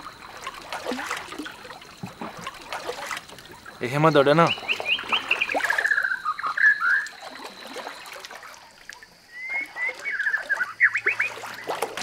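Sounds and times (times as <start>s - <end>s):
water splashing and trickling: 0.0s - 12.0s
birds chirping: 3.7s - 7.4s, 9.2s - 11.8s.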